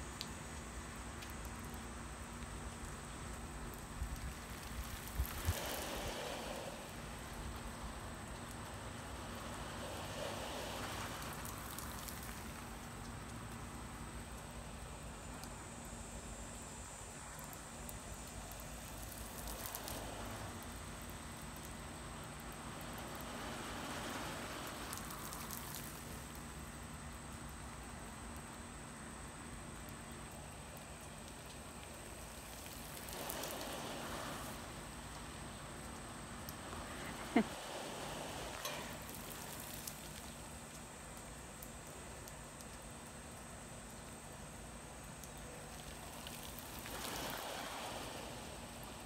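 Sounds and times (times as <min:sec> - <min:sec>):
sprinkler water pattering on grass: 0:00.0 - 0:49.0.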